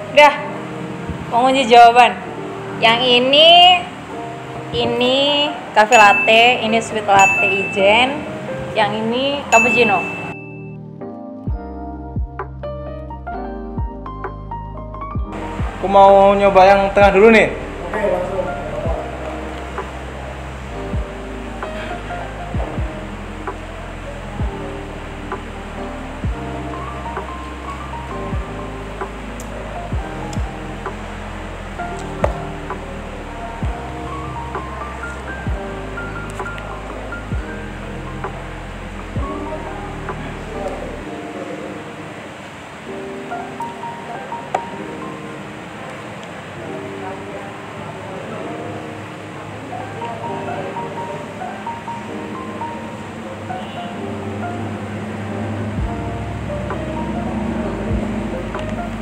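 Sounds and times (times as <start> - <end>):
music with beat bass and melody: 9.6 - 41.3, 53.6 - 59.0.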